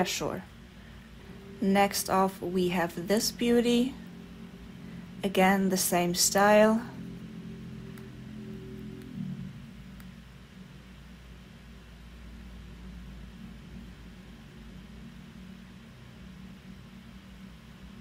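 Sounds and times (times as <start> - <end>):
low held tone: 0.0 - 11.0
faint low hum: 0.0 - 18.0.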